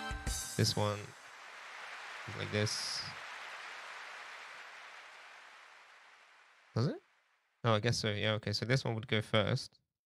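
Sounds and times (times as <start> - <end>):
faint background hiss: 0.5 - 9.8.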